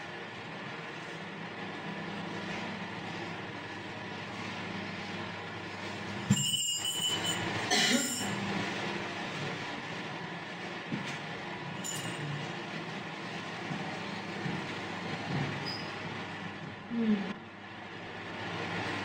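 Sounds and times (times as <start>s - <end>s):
electric fans humming: 0.0s - 19.0s.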